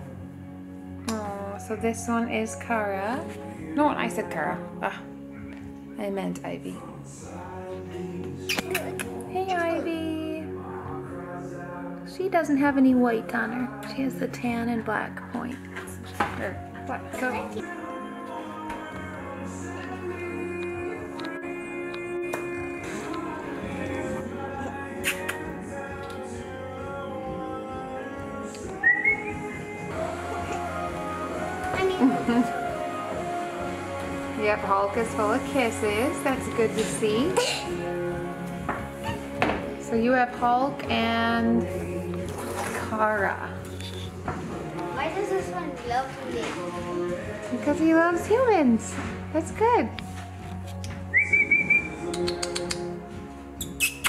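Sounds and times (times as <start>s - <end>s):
background music: 0.0s - 54.0s
person whistling high note: 28.8s - 29.5s, 51.1s - 52.7s
short rising whistle: 51.1s - 52.0s
sharp clicks: 52.1s - 52.9s.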